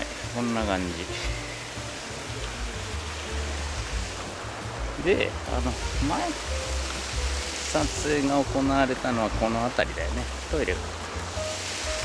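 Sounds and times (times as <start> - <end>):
faint music: 0.0 - 12.0
steady hiss: 0.0 - 12.0.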